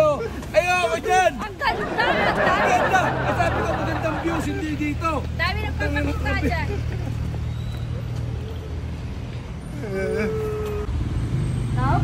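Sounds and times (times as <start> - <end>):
vehicle engine rumbling: 0.0 - 12.0.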